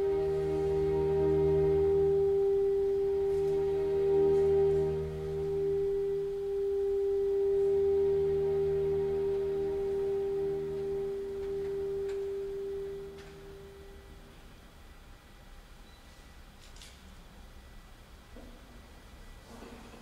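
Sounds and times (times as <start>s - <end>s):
alto saxophone long note: 0.0s - 14.4s
sustained string chords: 0.0s - 14.9s.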